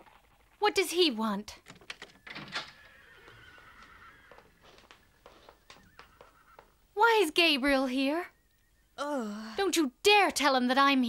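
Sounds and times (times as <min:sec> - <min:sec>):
horse whinnying: 0:02.1 - 0:06.8.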